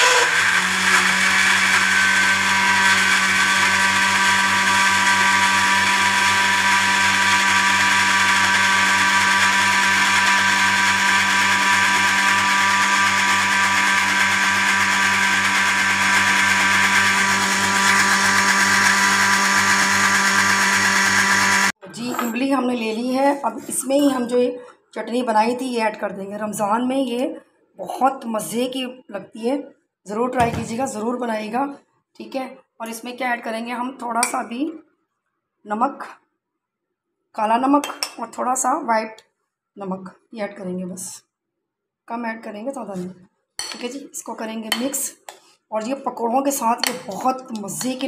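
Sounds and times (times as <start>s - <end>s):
electric blender grinding: 0.0s - 21.8s, 46.8s - 48.0s.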